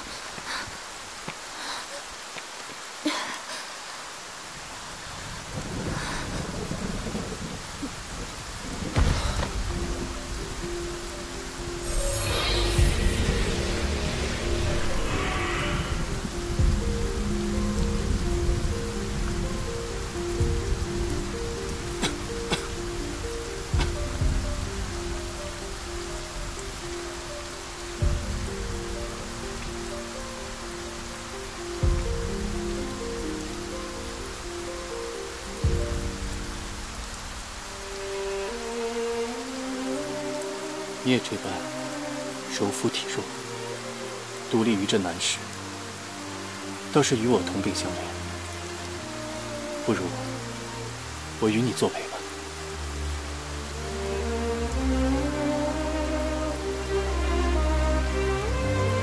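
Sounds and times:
steady heavy rain: 0.0 - 59.0
thunder rolling: 5.2 - 27.2
slow music with long held notes: 8.3 - 59.0.

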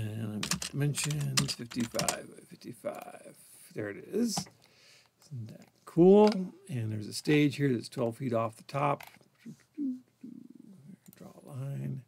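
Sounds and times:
man saying hm: 9.5 - 12.0.

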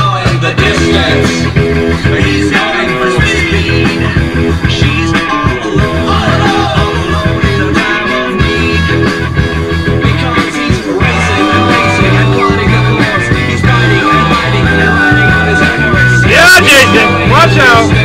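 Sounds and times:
rock music with guitar: 0.0 - 18.0.

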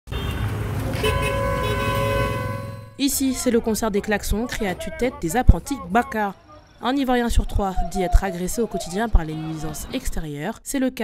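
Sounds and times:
vehicle horns honking: 0.1 - 3.0
street traffic engines: 0.1 - 10.7.

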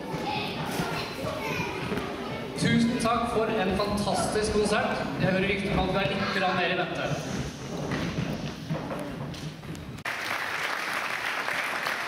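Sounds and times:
children's voices chattering: 0.0 - 4.6.

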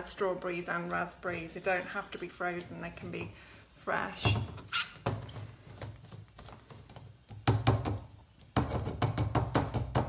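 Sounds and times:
sharp plastic knocks: 6.9 - 10.0.

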